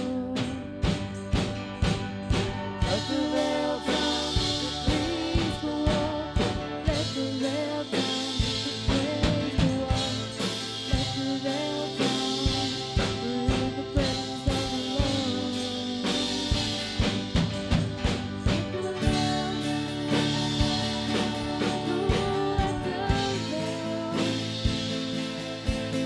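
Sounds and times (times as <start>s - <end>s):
drum kit beat: 0.0s - 26.0s
electric guitar: 0.0s - 26.0s
keyboard: 0.0s - 26.0s.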